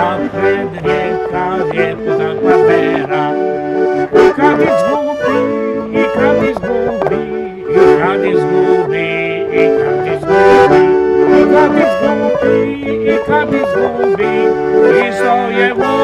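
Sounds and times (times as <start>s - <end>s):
piano accordion folk music: 0.0s - 16.0s.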